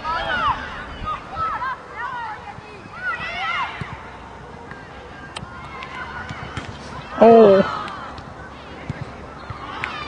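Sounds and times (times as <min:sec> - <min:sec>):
distant shouted voices: 0:00.0 - 0:10.0.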